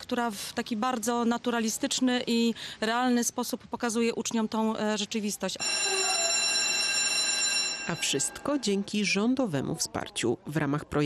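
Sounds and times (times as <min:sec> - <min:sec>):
electric school bell ringing: 0:05.6 - 0:08.9.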